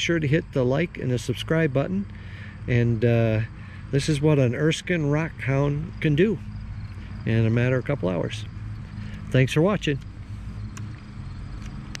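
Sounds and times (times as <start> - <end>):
engine idling: 0.0 - 12.0
faint ticks: 10.7 - 12.0.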